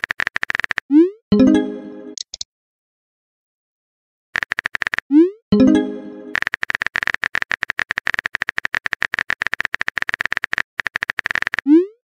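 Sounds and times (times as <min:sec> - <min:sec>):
phone keyboard typing clicks: 0:00.0 - 0:00.8, 0:02.2 - 0:02.4, 0:04.4 - 0:05.0, 0:06.3 - 0:11.7.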